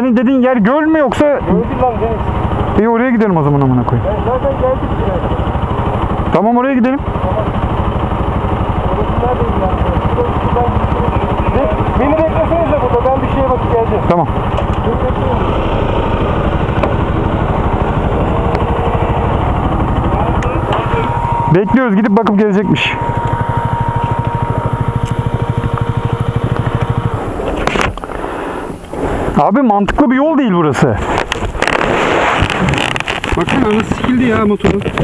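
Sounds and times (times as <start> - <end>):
motorcycle engine idling: 0.4 - 30.2
camera handling rustle and knocks: 26.6 - 28.2, 31.0 - 35.0.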